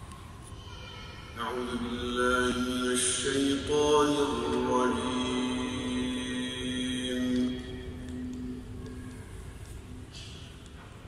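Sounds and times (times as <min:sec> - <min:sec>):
man reciting melodically: 0:01.4 - 0:09.7.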